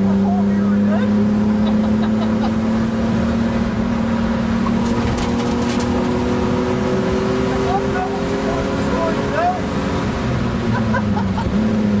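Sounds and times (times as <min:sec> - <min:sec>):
car engine running from inside: 0:00.0 - 0:12.0.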